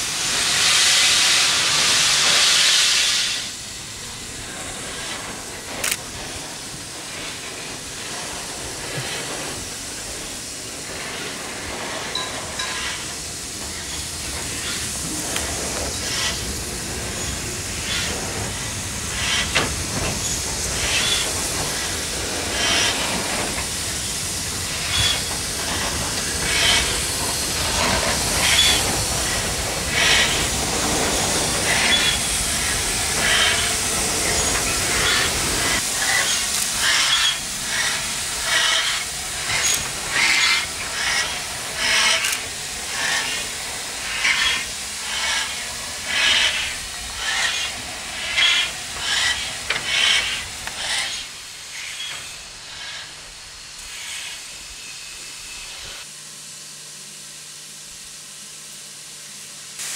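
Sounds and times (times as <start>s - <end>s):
steam locomotive hissing: 0.0s - 59.9s.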